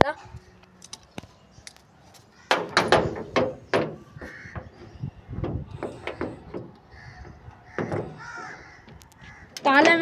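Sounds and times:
crow cawing: 4.2s - 5.0s, 6.9s - 9.9s.

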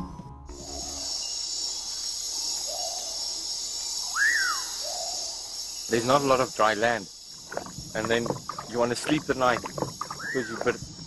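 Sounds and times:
insect chorus: 0.5s - 11.0s
animal calls: 7.5s - 10.8s.

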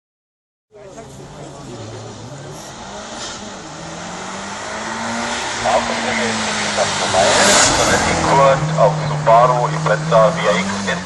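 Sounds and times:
car engine accelerating hard: 0.9s - 11.0s.

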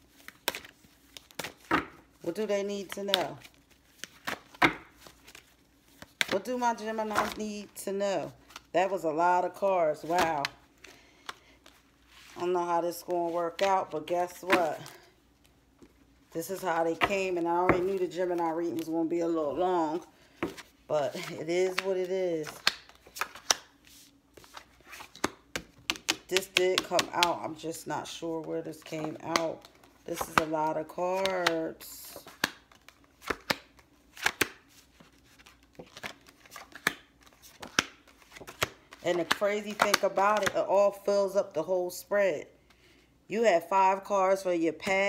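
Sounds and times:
cards being shuffled: 0.1s - 7.7s, 19.6s - 27.6s, 28.2s - 40.6s.

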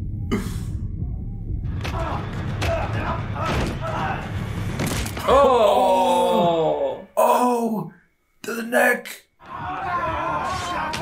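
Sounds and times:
low rumble: 0.0s - 4.8s
man groaning: 5.2s - 7.9s.

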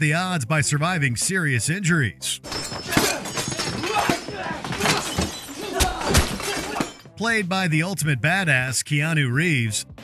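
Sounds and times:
hits and crashes: 2.4s - 7.1s
glass shattering: 2.4s - 7.2s.

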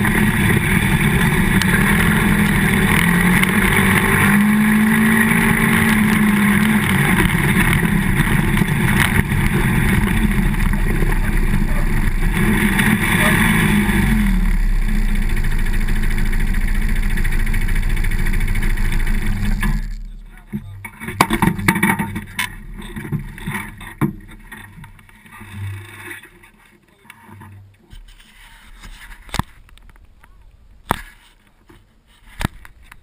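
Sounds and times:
quad bike engine running: 0.0s - 26.0s.

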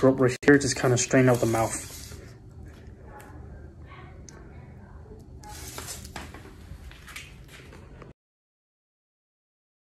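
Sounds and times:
steady low hum: 0.0s - 8.1s.

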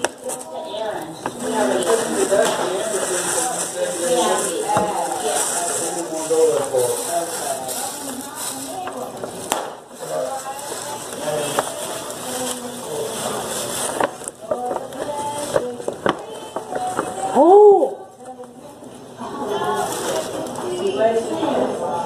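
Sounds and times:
paper and gift bag rustling: 0.0s - 21.9s.

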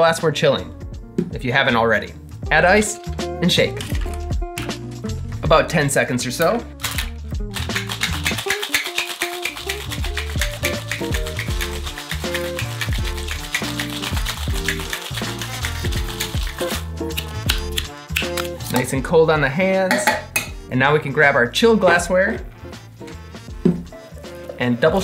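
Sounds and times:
background music: 0.0s - 25.0s
ice rattling in cocktail shaker: 6.8s - 17.4s.

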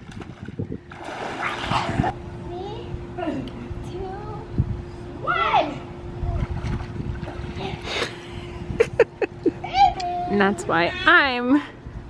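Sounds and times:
water splashing in a pool: 0.0s - 2.2s.

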